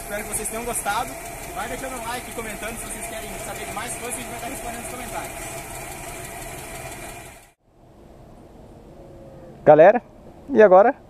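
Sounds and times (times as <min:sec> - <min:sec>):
car engine idling: 0:00.0 - 0:07.6.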